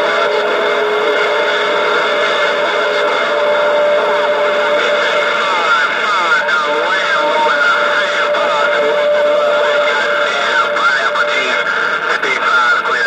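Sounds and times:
radio static: 0:00.0 - 0:13.0.

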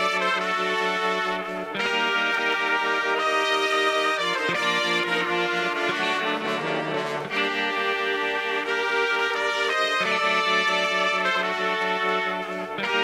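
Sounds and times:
instrumental music of held chords: 0:00.0 - 0:13.0.

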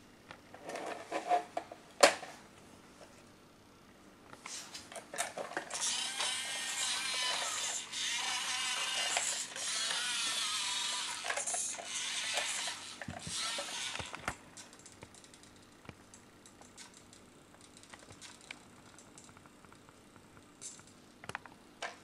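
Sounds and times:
toy tractor motor whirring: 0:05.6 - 0:14.3.

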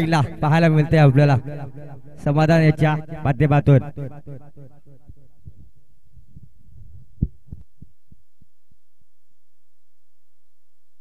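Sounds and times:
echoing low thumps on microphone: 0:00.0 - 0:02.3, 0:02.9 - 0:08.6
faint low hum: 0:05.2 - 0:11.0.

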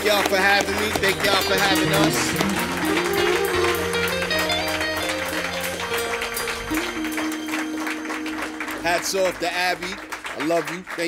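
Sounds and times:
hip-hop band music: 0:00.0 - 0:10.0.

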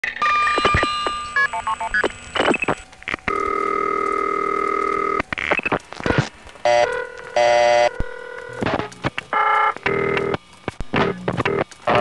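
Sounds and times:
held telephone tone: 0:00.2 - 0:08.6.

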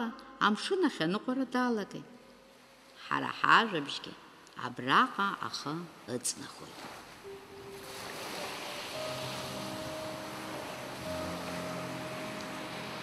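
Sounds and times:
sea waves washing: 0:05.2 - 0:13.0
soft music of long notes: 0:06.8 - 0:13.0.

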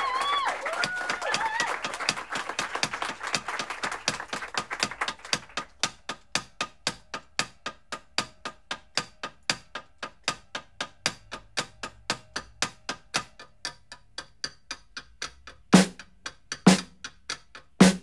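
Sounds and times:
applause: 0:00.0 - 0:05.7.

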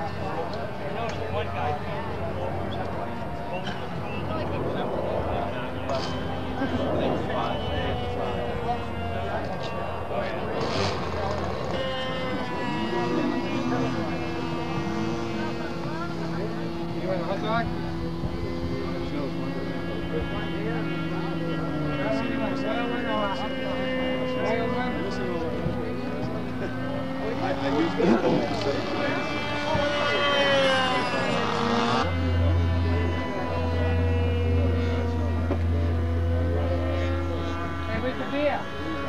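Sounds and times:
model aircraft engine running: 0:00.0 - 0:39.0
people talking: 0:00.0 - 0:39.0.

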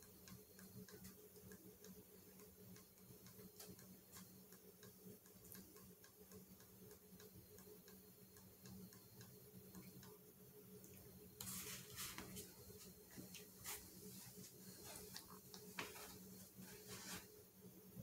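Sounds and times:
faint regular ticking: 0:00.0 - 0:11.4
low steady hum: 0:00.0 - 0:18.0.

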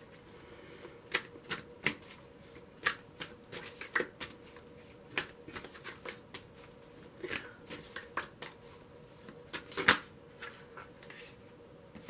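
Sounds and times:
cards being shuffled: 0:01.1 - 0:11.2.

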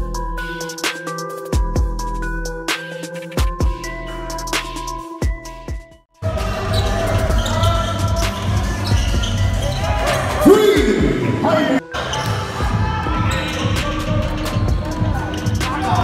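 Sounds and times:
background beat music: 0:00.0 - 0:16.0
players shouting: 0:06.2 - 0:14.3.

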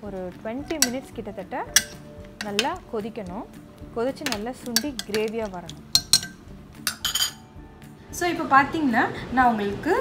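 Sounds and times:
metal spoon clinking in steel bowl: 0:00.7 - 0:02.9, 0:04.2 - 0:07.5.

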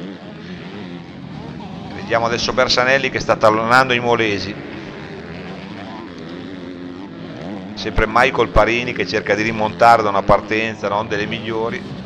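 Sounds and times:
motorcycle engines revving: 0:00.0 - 0:12.0.

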